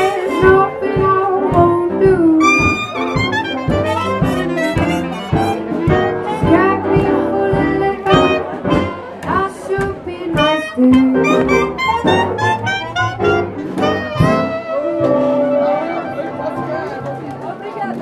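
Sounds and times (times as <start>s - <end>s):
drums: 0.0s - 15.8s
plucked double bass: 0.0s - 17.5s
horns playing melody: 2.4s - 7.2s, 8.0s - 9.1s, 10.3s - 17.6s.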